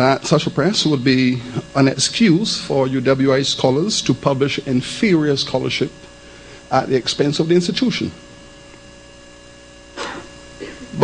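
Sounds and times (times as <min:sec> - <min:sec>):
electrical mains hum: 0:00.0 - 0:11.0
person speaking: 0:06.7 - 0:08.2.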